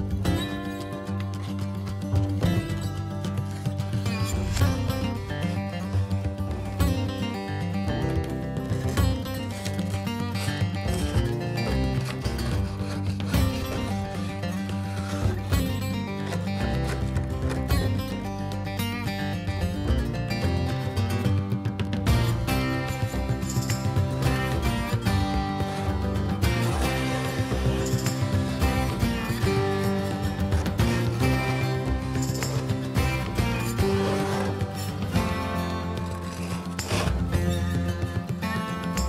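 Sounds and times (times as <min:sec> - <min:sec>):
background music: 0:00.0 - 0:39.0.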